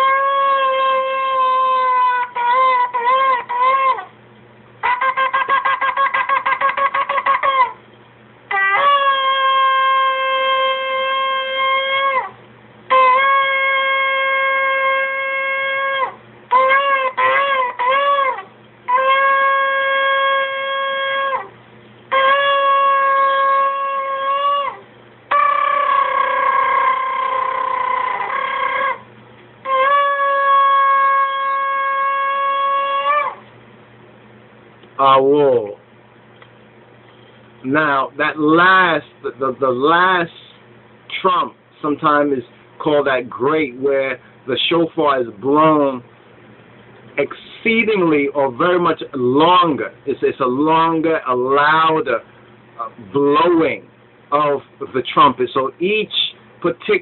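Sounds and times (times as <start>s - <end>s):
ram's horn blasts: 0.0s - 4.1s, 4.8s - 7.9s, 8.5s - 33.4s.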